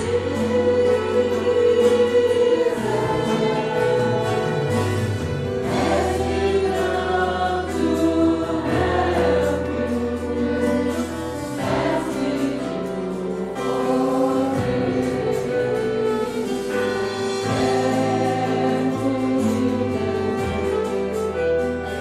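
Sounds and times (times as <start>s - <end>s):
congregation singing a hymn: 0.0s - 22.0s
violins: 0.0s - 22.0s.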